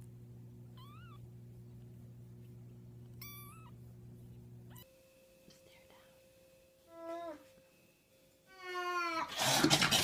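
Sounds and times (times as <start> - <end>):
steady low hum: 0.0 - 8.9
kitten mewing: 3.2 - 3.8.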